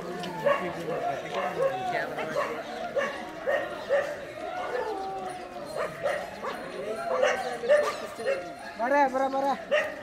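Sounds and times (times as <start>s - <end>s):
dog barking: 0.4s - 4.8s, 5.8s - 8.5s, 9.7s - 10.0s.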